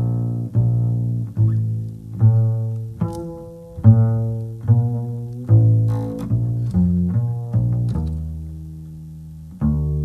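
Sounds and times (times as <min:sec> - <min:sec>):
plucked bass notes: 0:00.0 - 0:10.0.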